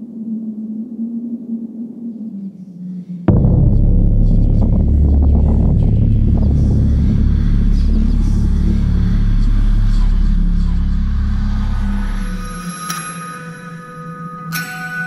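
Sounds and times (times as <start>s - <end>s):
deep rumbling drone: 2.8s - 15.0s.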